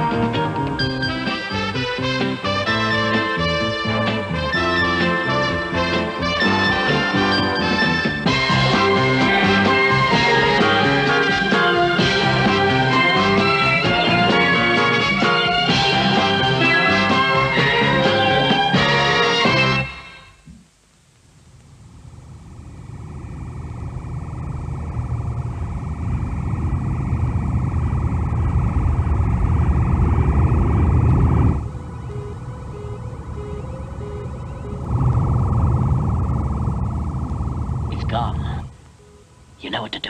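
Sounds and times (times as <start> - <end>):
spacecraft engine drone: 0.0 - 18.9, 22.0 - 39.6
theme music: 0.0 - 20.4, 31.6 - 36.0
pulsing beep: 31.8 - 36.2.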